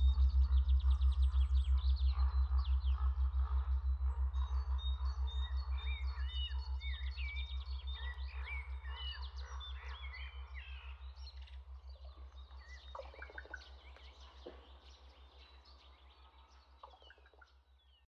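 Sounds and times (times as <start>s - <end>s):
low pulsing hum: 0.0s - 17.5s
birdsong chirps and whistles: 0.0s - 18.0s.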